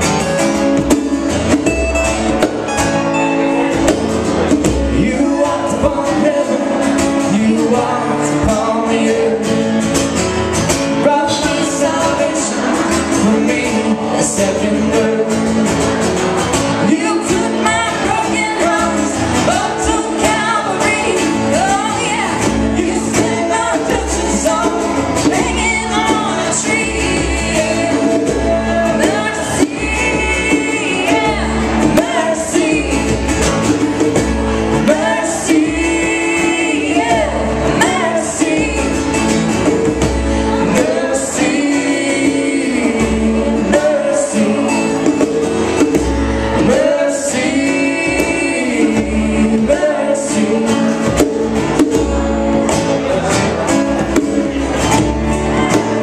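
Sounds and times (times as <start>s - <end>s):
strummed acoustic guitars: 0.0s - 56.0s
woman singing into a microphone: 16.8s - 33.3s, 34.8s - 39.3s.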